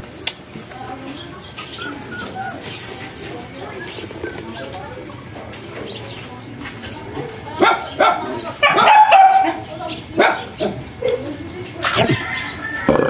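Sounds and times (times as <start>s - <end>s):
dog barking: 7.6s - 10.8s.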